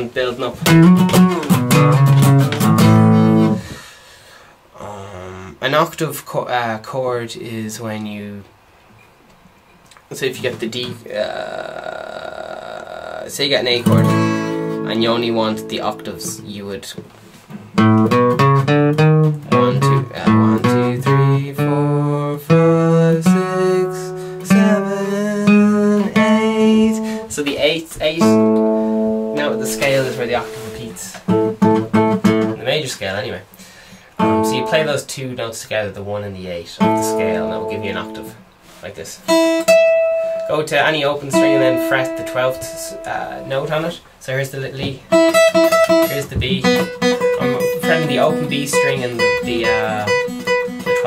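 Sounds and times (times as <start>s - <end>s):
acoustic guitar strings plucked: 0.6s - 3.8s, 13.7s - 16.6s, 17.5s - 32.6s, 34.2s - 35.1s, 36.8s - 38.4s, 39.3s - 43.6s, 44.8s - 51.0s.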